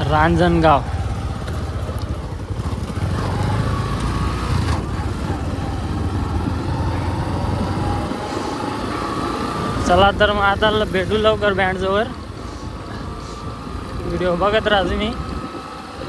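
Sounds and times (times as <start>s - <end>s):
motorcycle engine rumble: 0.0s - 16.0s
road and wind noise: 0.0s - 16.0s.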